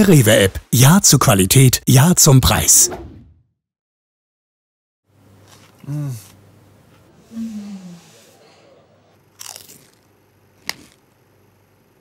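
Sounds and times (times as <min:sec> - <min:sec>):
tortilla chip crunch: 0:09.3 - 0:11.0.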